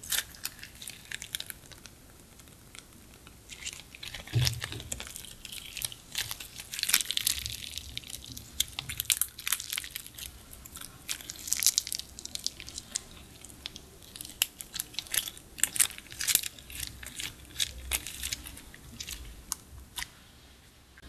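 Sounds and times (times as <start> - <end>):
slime crackling and popping: 0.0 - 20.1.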